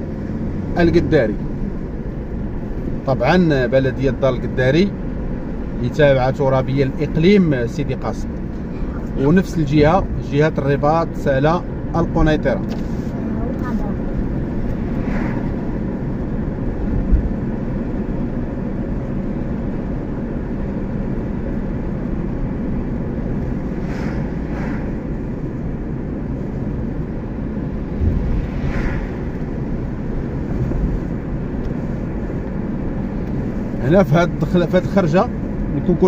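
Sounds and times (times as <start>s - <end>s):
car interior road rumble: 0.0s - 36.0s
passing vehicles swishing: 0.0s - 36.0s.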